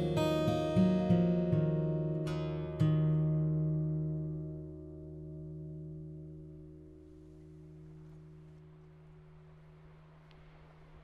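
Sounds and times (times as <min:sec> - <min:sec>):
acoustic guitar chord: 0:00.0 - 0:10.2.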